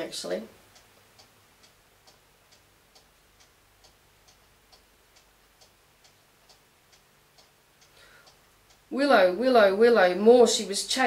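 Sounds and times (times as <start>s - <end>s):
clock ticking: 0.0s - 11.0s.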